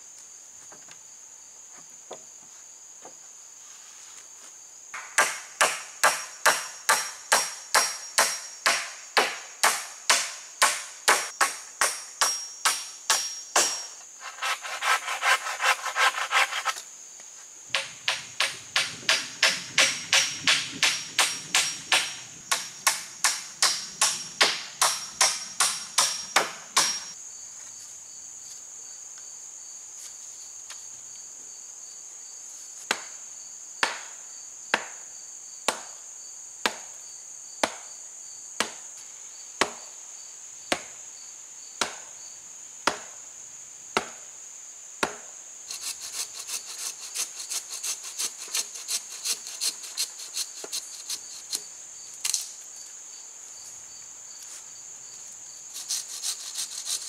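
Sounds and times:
high insect drone: 0.0 - 57.0
hammer driving nails into wood: 17.7 - 27.1.

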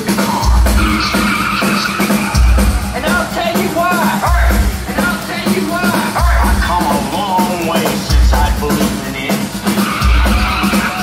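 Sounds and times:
live industrial metal band: 0.0 - 11.0.

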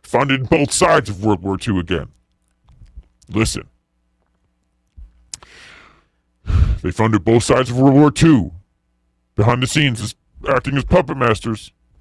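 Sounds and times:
man speaking: 0.0 - 2.2, 3.3 - 3.7, 6.8 - 8.6, 9.4 - 11.7
mouth click: 4.8 - 5.5
man sighing: 5.4 - 6.8.

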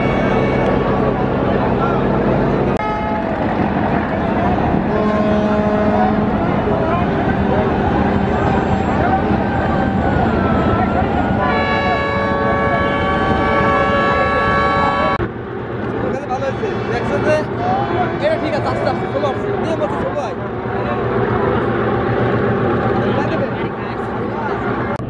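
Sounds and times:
boat engines running loudly: 0.0 - 25.0
ship's horn long note: 4.9 - 6.6, 11.4 - 15.2.

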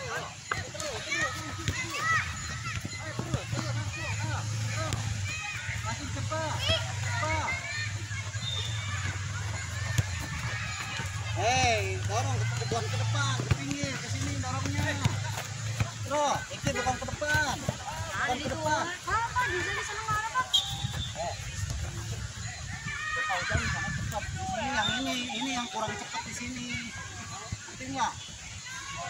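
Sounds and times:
children calling and shouting: 0.0 - 29.0.

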